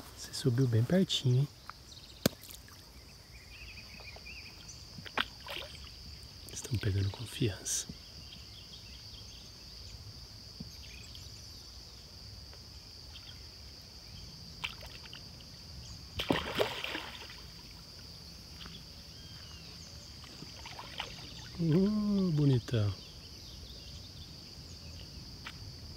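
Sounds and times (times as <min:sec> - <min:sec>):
fish splashing and slurping: 0:05.0 - 0:06.0, 0:16.2 - 0:17.8, 0:20.2 - 0:21.8.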